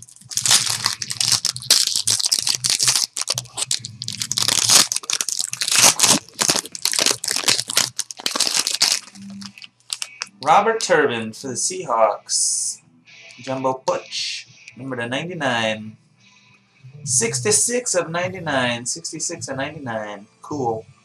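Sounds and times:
foil wrapper tearing and crinkling: 0:00.0 - 0:10.5.

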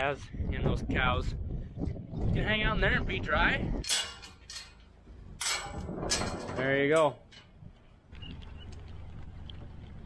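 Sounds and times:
metal pipe gate clanking: 0:03.8 - 0:07.6.

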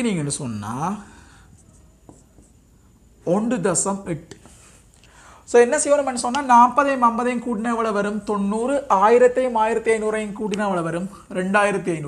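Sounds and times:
marker pen writing on whiteboard: 0:01.6 - 0:02.6.

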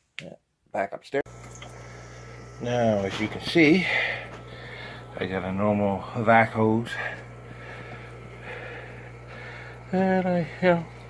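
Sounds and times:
aquarium equipment hum: 0:01.3 - 0:11.0.

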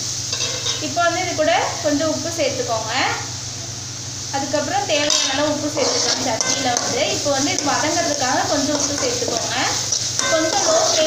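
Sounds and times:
vegetables sizzling in a pan: 0:00.0 - 0:11.0
person speaking: 0:04.4 - 0:11.0.

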